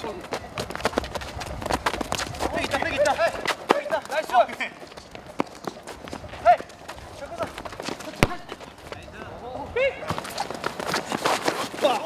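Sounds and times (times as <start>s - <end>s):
running footfalls on artificial turf: 0.0s - 12.0s.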